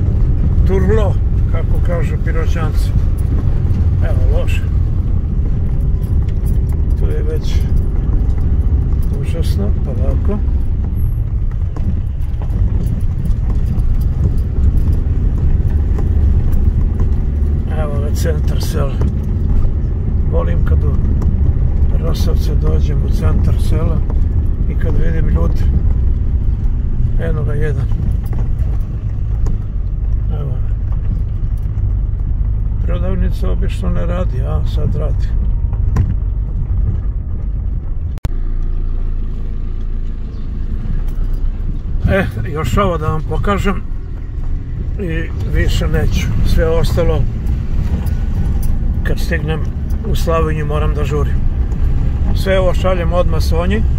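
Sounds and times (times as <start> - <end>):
car rumbling on rough road: 0.0 - 53.9
stones knocking under tyres: 2.8 - 22.3, 22.9 - 33.4, 34.7 - 38.9.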